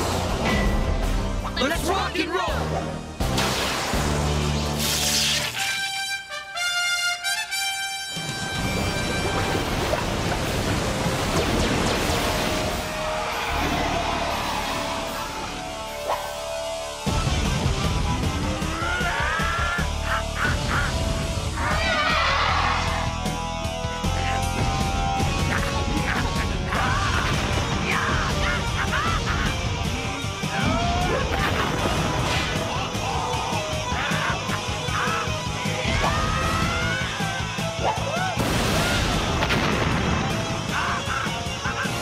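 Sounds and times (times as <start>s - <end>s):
action music with low bass: 8.3s - 42.0s.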